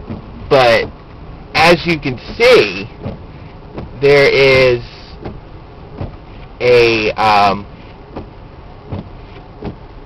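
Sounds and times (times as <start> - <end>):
car engine and tyre rumble: 0.0 - 10.0
faint soft knocks: 7.8 - 9.9.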